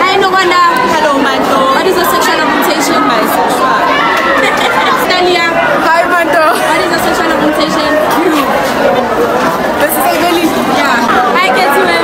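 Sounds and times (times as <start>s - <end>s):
several voices talking: 0.0s - 12.0s.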